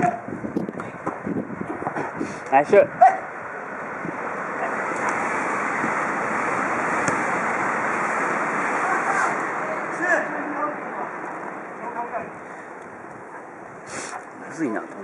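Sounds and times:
wind rushing over microphone: 0.0s - 9.9s.

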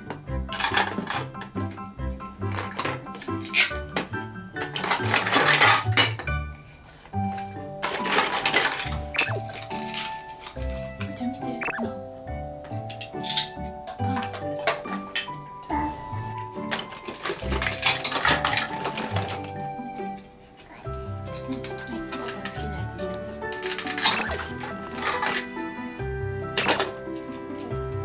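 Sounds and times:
plastic toys clattering: 0.0s - 11.2s, 12.7s - 15.7s, 16.3s - 27.9s
background music: 0.0s - 28.0s.

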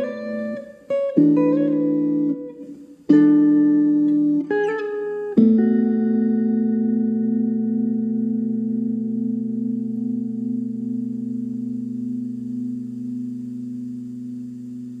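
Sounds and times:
electric guitar chord ringing: 0.0s - 15.0s.

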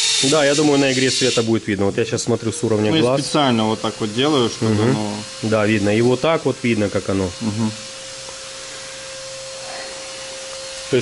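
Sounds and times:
electric motor humming: 0.0s - 11.0s.

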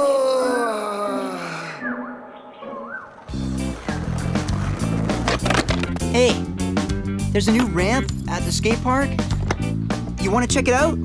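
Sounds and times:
skateboard rolling on pavement: 3.0s - 9.8s
background music with bass line: 3.3s - 11.0s.

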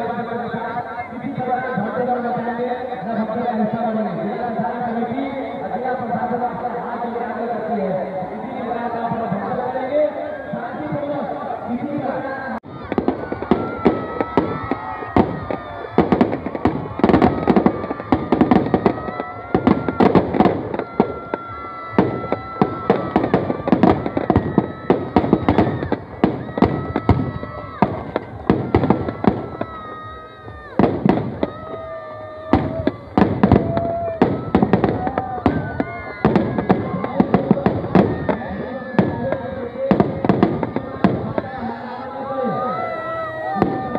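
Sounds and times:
crowd voices: 0.0s - 43.9s
firecrackers bangs and crackles: 12.7s - 42.0s, 43.1s - 43.9s.

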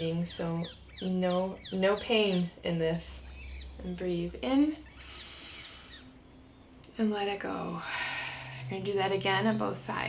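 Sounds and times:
faint birdsong chirps: 0.0s - 10.0s.

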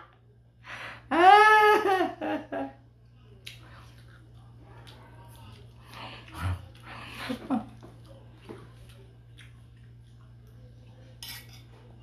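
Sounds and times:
muffled hum through full mouth: 0.0s - 12.0s
soft chewing: 3.0s - 12.0s.

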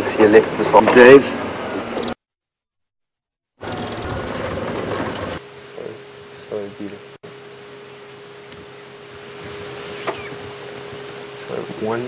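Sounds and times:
steady single-pitched hum: 3.6s - 12.0s.

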